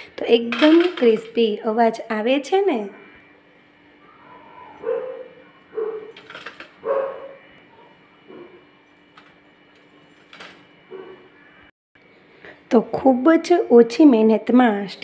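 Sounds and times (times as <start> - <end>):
low steady hum: 0.0 - 15.0
faint short whining calls: 4.0 - 6.2.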